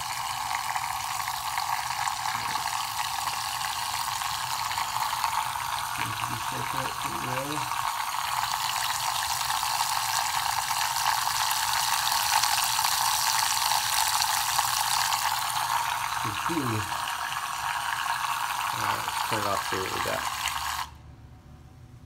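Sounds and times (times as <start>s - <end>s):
shaker cup motor whirring: 0.0s - 21.0s.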